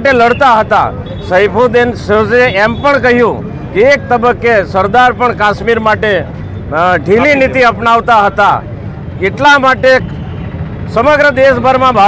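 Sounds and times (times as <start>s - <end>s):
man speaking: 0.0s - 10.0s
steady background noise: 0.0s - 12.0s.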